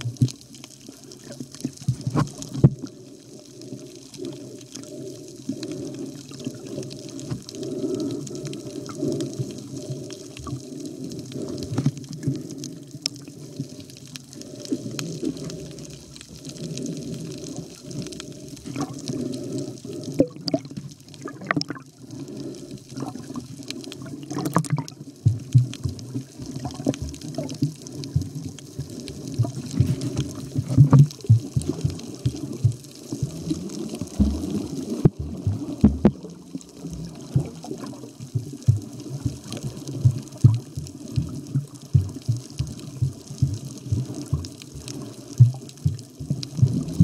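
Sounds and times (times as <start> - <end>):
muffled water sloshing and gurgling: 0.0 - 47.0.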